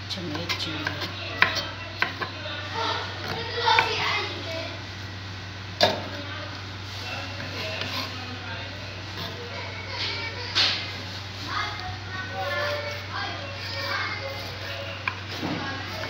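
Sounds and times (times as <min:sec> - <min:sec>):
children talking: 0:00.0 - 0:16.0
steady low hum: 0:00.0 - 0:16.0
knife scraping cutting board: 0:07.3 - 0:08.2, 0:12.3 - 0:16.0.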